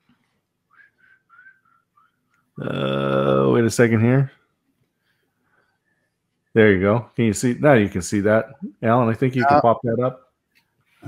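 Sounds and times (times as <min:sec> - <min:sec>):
faint high whistling: 0:00.6 - 0:02.5.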